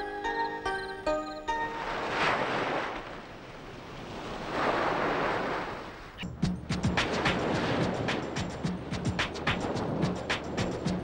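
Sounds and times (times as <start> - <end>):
sea surf breaking on beach: 1.7 - 6.2, 6.8 - 11.0.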